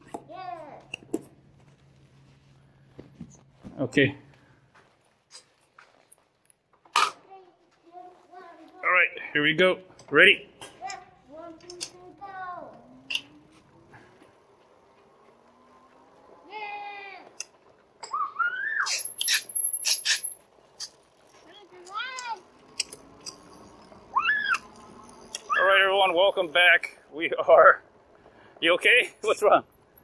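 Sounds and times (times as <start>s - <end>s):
child shouting and squealing: 0.3s - 0.9s, 10.8s - 12.8s, 16.4s - 17.4s, 18.0s - 19.1s, 21.5s - 22.5s, 24.1s - 24.8s, 25.4s - 25.9s.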